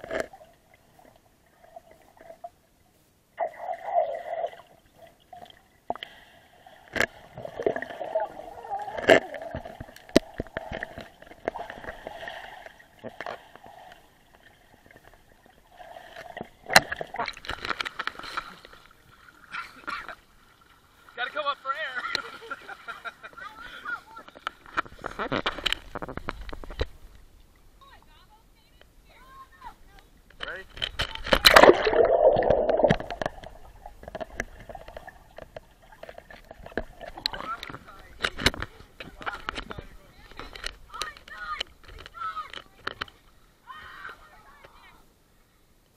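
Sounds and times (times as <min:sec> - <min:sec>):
pool water splashing: 0:00.0 - 0:30.6, 0:31.4 - 0:45.1
child shouting: 0:43.6 - 0:44.5.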